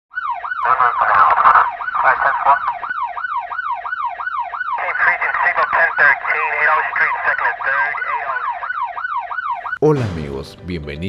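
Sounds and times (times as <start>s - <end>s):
higher second siren: 0.1s - 9.8s
siren yelping: 0.1s - 9.8s.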